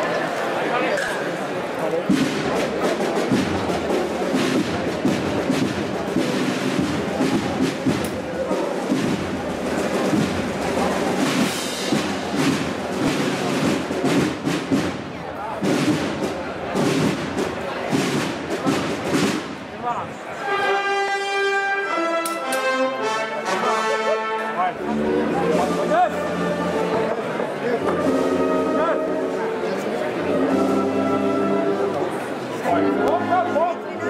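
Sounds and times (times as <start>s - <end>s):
crowd voices: 0.0s - 34.0s
band drum beats and thumps: 1.8s - 20.2s.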